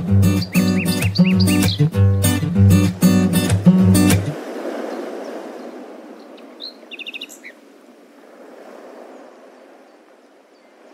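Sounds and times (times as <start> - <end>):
songbird chirping: 0.0 - 7.7, 9.0 - 10.9.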